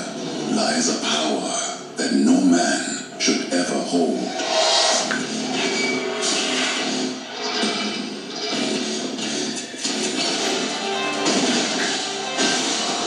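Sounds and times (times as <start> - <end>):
movie trailer soundtrack: 0.0 - 13.0.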